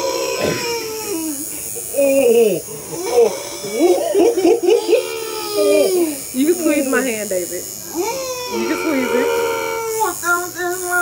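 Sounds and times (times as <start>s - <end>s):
tattoo machine buzzing: 0.0s - 11.0s.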